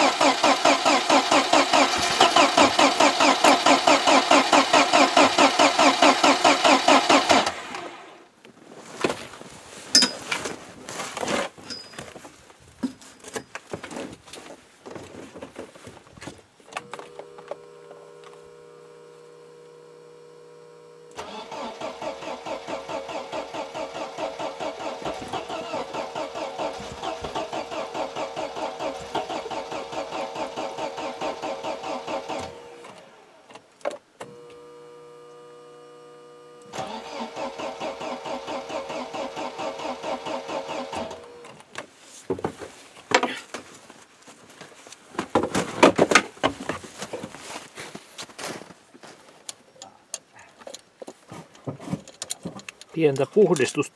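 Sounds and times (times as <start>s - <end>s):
starter motor cranking engine: 0.0s - 8.2s, 21.1s - 33.4s, 36.6s - 41.6s.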